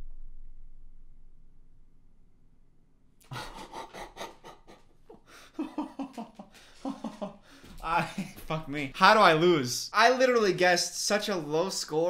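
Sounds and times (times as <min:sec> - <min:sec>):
man breathy laughter: 0:03.3 - 0:08.5.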